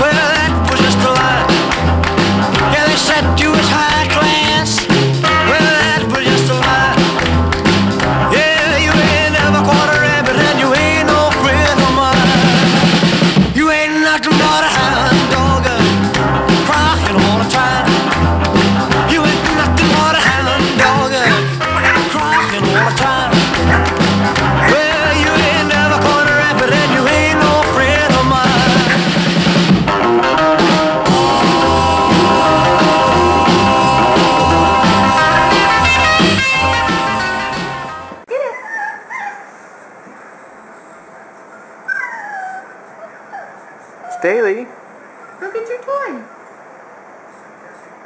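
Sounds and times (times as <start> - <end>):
rock and roll music with singing: 0.0 - 38.2
puppy whining: 20.1 - 24.9, 38.3 - 39.7, 41.6 - 44.4.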